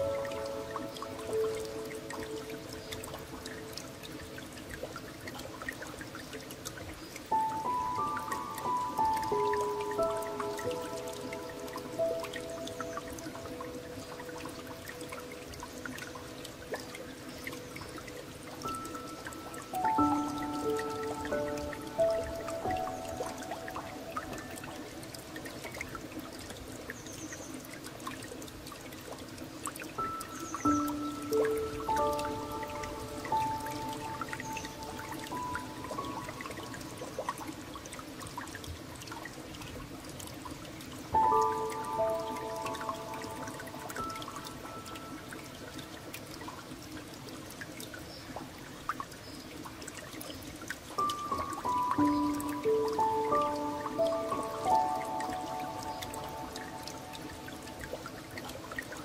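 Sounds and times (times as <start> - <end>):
trickling dripping water: 0.0 - 59.0.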